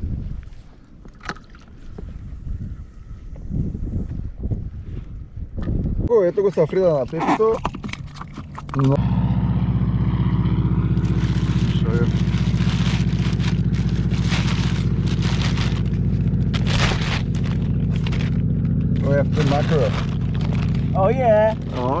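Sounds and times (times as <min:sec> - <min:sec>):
low motor hum: 0:07.4 - 0:22.0
plastic bag rustling: 0:11.2 - 0:22.0.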